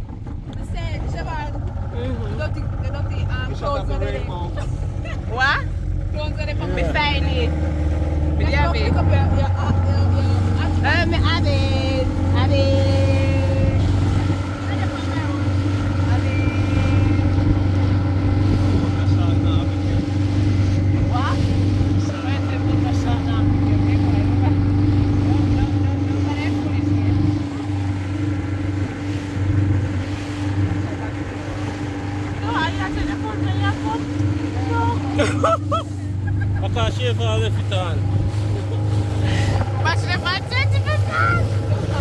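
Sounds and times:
motorboat engine droning: 0.0 - 42.0
rushing water: 0.0 - 42.0
wind: 0.0 - 42.0.

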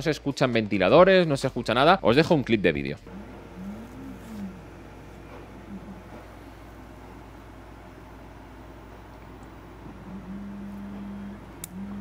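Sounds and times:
printer low steady hum: 3.1 - 12.0.

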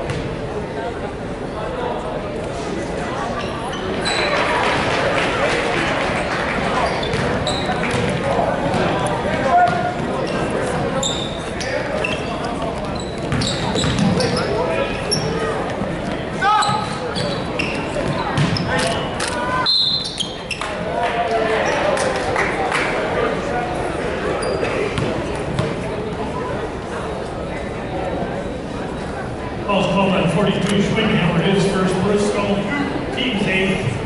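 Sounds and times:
many voices in a gym: 0.0 - 34.0
ball bouncing on hardwood court: 0.1 - 0.3, 7.1 - 9.9, 13.3 - 14.4, 18.0 - 18.7, 25.0 - 25.8
sneakers squeaking on floor: 0.1 - 0.3, 3.3 - 4.5, 6.8 - 20.8, 24.3 - 25.9.

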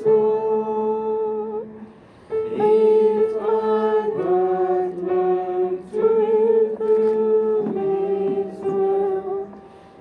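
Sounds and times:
small group singing a hymn: 0.0 - 1.7, 2.3 - 9.7
keyboard accompaniment: 0.0 - 10.0.

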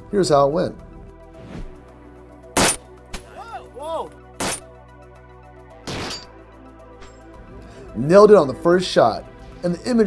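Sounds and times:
quiet background music: 0.0 - 10.0
rifle shot: 2.6 - 2.9.

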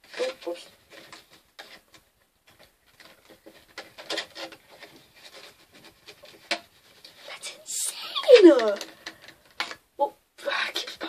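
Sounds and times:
small knocks: 0.0 - 7.3
packaging rustling: 0.0 - 7.4.

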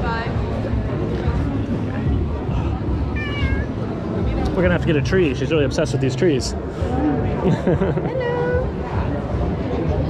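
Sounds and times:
cat short meow: 3.2 - 3.8.

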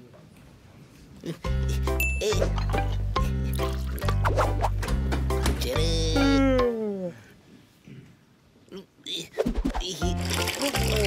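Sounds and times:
background music: 1.4 - 6.8, 9.8 - 11.0
cartoon character yawning: 5.7 - 7.3.

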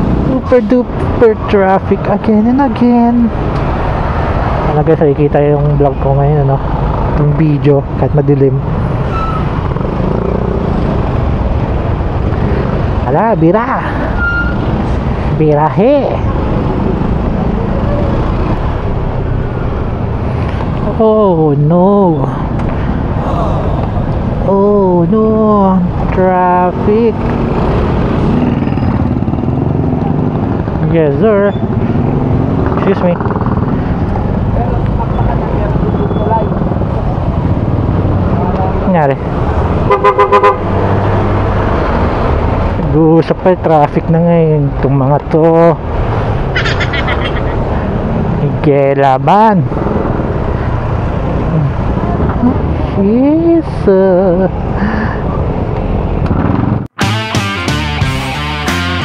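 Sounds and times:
motorcycle engines nearby: 0.0 - 57.0.

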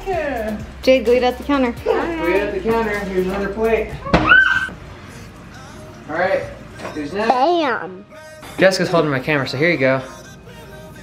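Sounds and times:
child squealing: 4.0 - 4.7.

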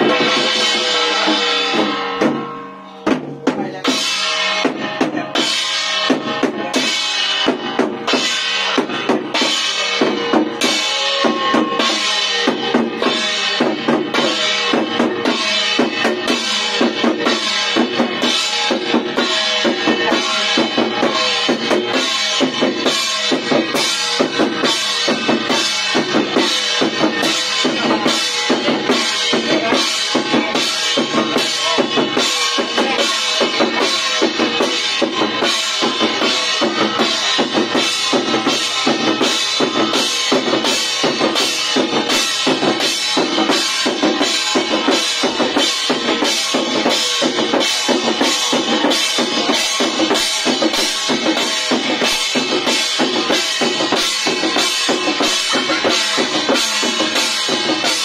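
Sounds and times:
small drums beaten rapidly: 0.0 - 58.0.

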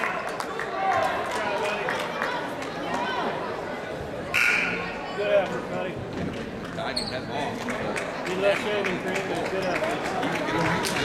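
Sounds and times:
gym crowd chatter: 0.0 - 11.0
shrill referee whistle blast: 4.4 - 4.8.

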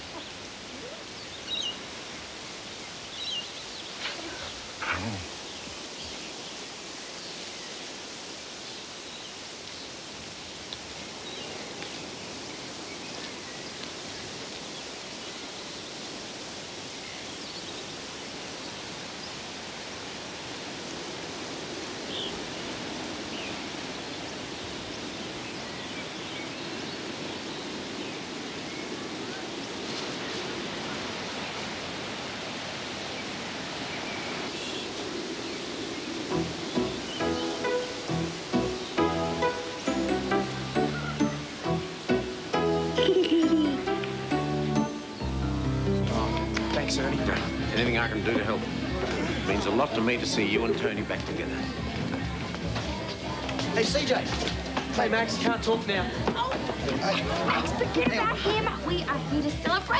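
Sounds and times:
steady rushing noise: 19.6 - 42.9, 44.1 - 59.9
soft background music: 36.3 - 59.9.

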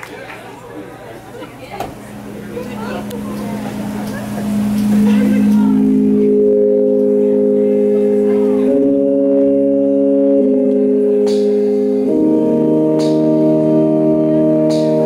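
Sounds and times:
audience chatter: 0.0 - 15.0
organ chords on keyboard: 2.0 - 15.0.

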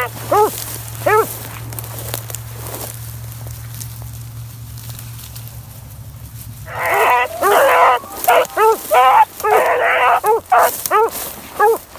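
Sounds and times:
hounds baying and barking: 0.0 - 1.7, 6.6 - 11.9.

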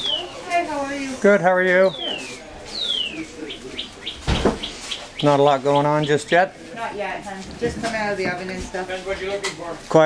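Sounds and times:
bird chirping: 0.0 - 0.6, 1.8 - 6.5
dull knock: 4.2 - 4.7.

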